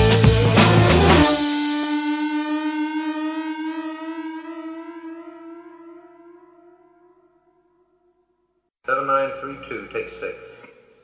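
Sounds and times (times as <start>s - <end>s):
rock drums and bass: 0.0s - 1.4s
held electric guitar note: 0.8s - 7.8s.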